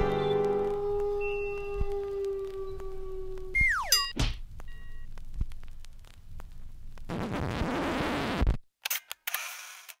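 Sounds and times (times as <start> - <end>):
music: 0.0 - 2.0.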